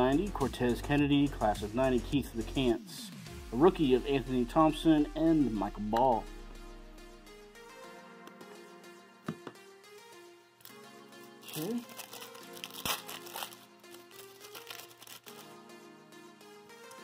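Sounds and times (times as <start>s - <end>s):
quiet background music: 0.0s - 17.0s
wrapper tearing and crinkling: 11.4s - 15.5s.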